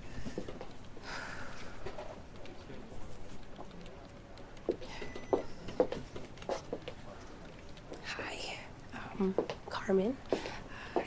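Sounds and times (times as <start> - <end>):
woman whispering: 8.0 - 10.2.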